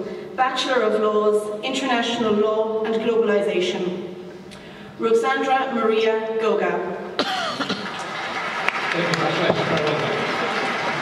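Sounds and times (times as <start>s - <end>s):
audience clapping: 7.5s - 11.0s.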